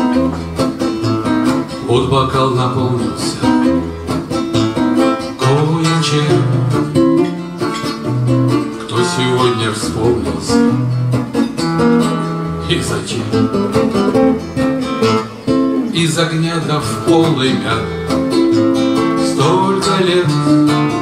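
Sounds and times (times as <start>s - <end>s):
acoustic guitars playing: 0.0s - 21.0s.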